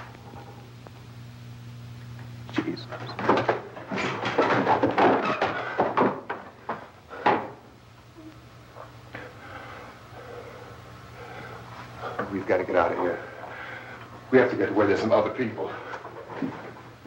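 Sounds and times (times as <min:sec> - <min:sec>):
film soundtrack hum: 0:00.0 - 0:17.0
knocks and clatter: 0:02.9 - 0:07.6.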